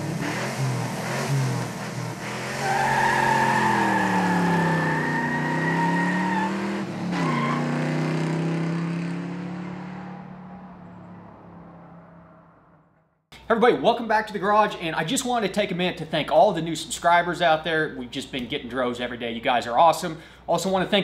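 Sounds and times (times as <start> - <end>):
car engine revving: 0.0 - 12.9
tires squealing: 0.2 - 8.8.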